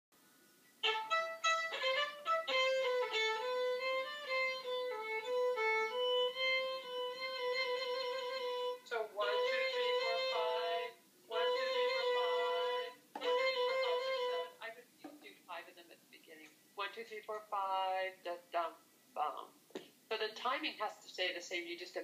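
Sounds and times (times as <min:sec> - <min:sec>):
violin playing with trills: 0:00.8 - 0:14.6.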